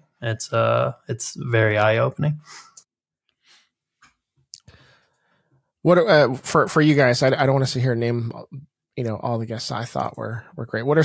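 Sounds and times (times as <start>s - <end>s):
man speaking: 0.2s - 2.8s, 5.8s - 11.0s.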